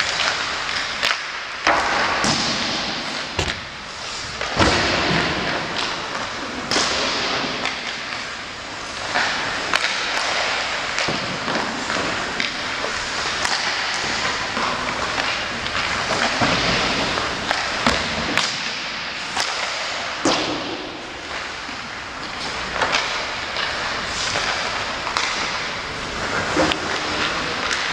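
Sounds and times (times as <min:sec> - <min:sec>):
pucks hitting boards: 0:00.0 - 0:27.9
skates scraping ice: 0:00.0 - 0:27.9
sticks slapping pucks: 0:00.0 - 0:27.9.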